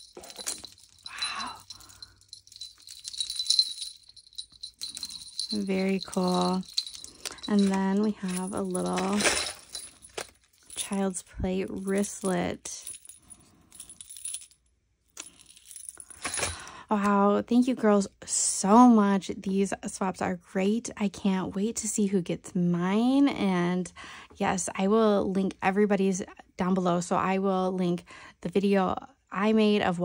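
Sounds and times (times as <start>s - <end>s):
beaded keychain jangling: 0.0s - 14.6s, 15.2s - 16.6s.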